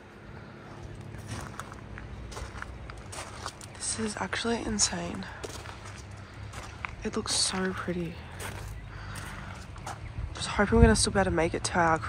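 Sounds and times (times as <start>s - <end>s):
low steady rumble: 0.0s - 12.0s
footsteps on snow: 0.7s - 10.1s.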